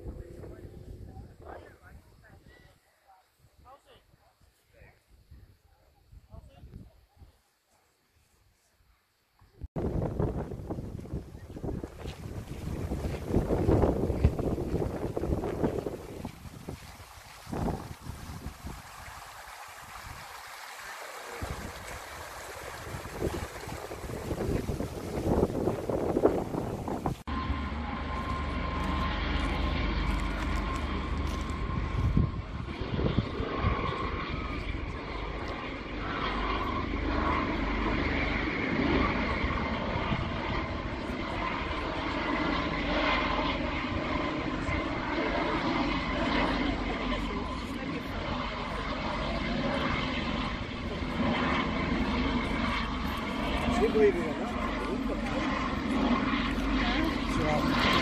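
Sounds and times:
helicopter flying past: 9.8 - 58.0
stream running over rocks: 16.0 - 25.4.

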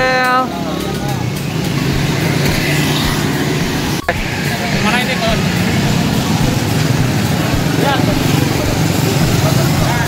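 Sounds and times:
low engine rumble: 0.0 - 10.0
motorbikes and cars passing: 0.0 - 10.0.

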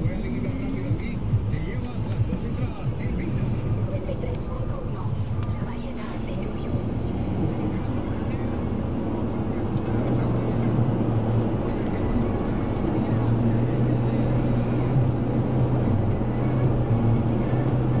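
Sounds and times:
car road and engine noise: 0.0 - 18.0
low drone: 4.7 - 18.0.

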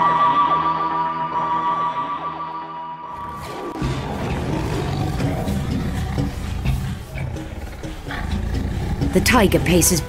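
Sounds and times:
music: 0.0 - 10.0
tiger growling: 3.1 - 10.0.

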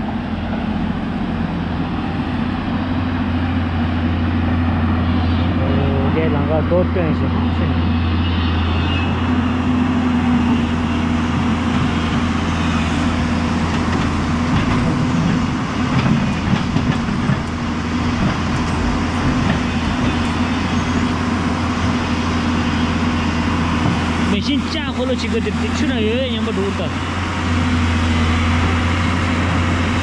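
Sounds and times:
excavator diesel engine running: 0.0 - 30.0.

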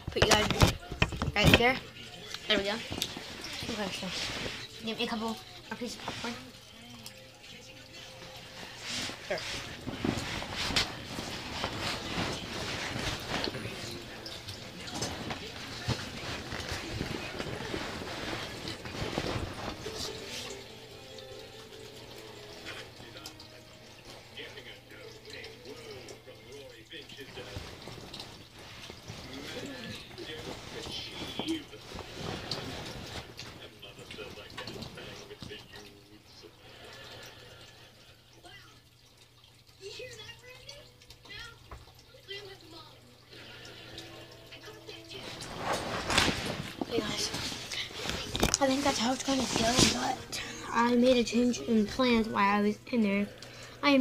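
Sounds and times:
bedding rustling: 0.0 - 6.7, 8.3 - 21.5, 27.2 - 35.6, 45.1 - 53.2.

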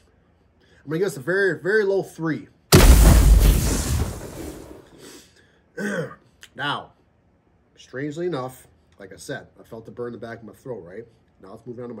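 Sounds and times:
boom with fiery rush: 2.7 - 5.0.

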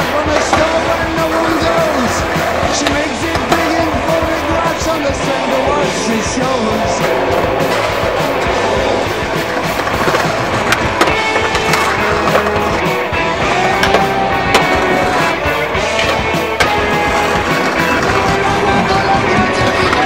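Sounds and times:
music: 0.0 - 20.0
skateboard clacking: 0.0 - 20.0
skateboard wheels rolling: 0.0 - 20.0.

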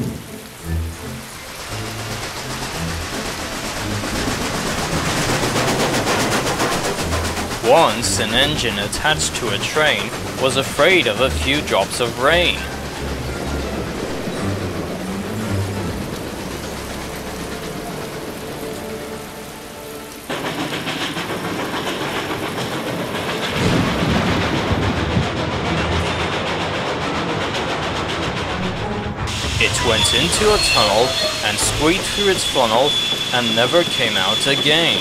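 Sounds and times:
heavy rain: 0.0 - 35.0
steam train running: 0.0 - 35.0
low rumble: 28.3 - 30.7.

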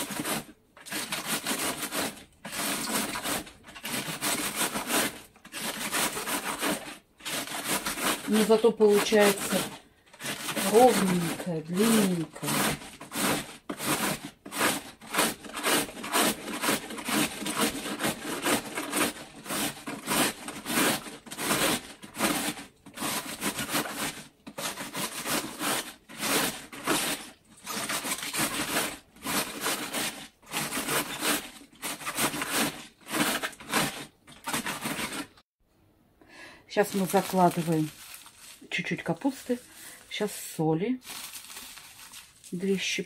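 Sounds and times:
shredder scraping cabbage: 0.0 - 35.4, 36.8 - 43.0.

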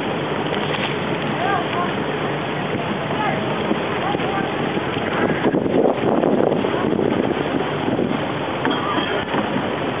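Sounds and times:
boat engine running: 0.0 - 10.0
water along boat hull: 0.0 - 10.0
wind on microphone: 0.0 - 10.0.

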